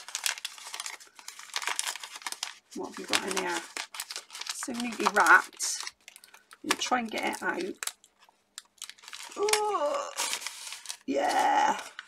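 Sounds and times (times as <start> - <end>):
paper and tape crinkling: 0.0 - 12.0.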